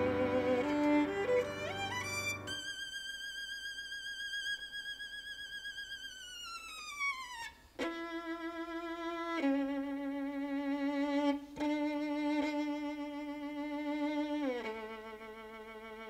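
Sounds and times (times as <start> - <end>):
solo violin: 0.0 - 16.0.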